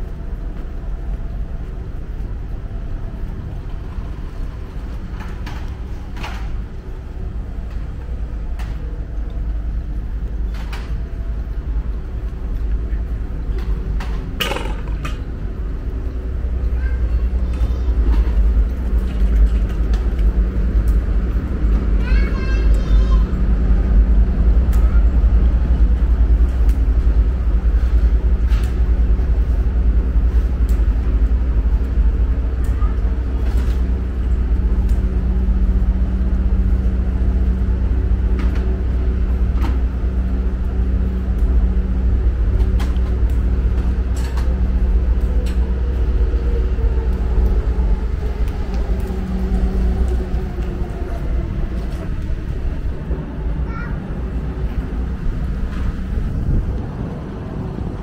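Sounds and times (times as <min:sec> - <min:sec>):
low traffic rumble: 0:00.0 - 0:58.0.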